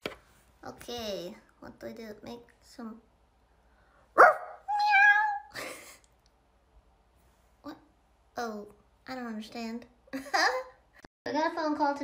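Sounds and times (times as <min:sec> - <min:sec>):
person imitating cat meow: 0:04.7 - 0:05.5.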